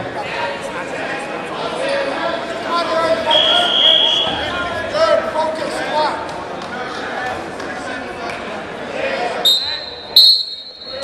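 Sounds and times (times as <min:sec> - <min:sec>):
voices calling out: 0:02.9 - 0:05.2.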